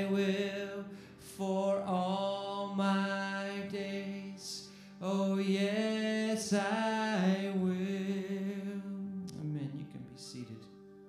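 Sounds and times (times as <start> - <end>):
man singing slow worship song: 0.0 - 10.8
acoustic guitar: 0.0 - 11.0.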